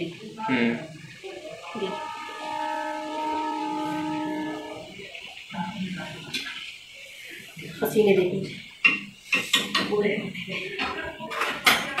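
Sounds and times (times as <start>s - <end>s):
horn blast: 1.5s - 6.5s.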